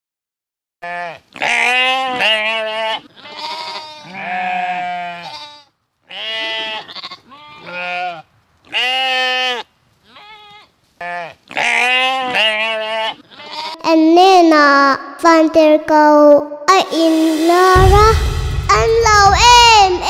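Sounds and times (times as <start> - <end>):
children bleating like sheep: 0.8 - 8.1, 11.1 - 14.1.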